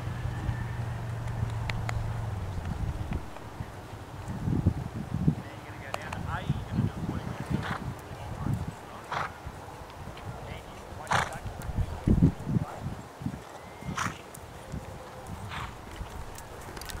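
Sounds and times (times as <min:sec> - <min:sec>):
horse walking on grass: 0:00.2 - 0:17.0
horse snorting: 0:07.5 - 0:07.9, 0:09.0 - 0:09.4, 0:10.9 - 0:11.7, 0:14.0 - 0:14.2, 0:15.4 - 0:16.0.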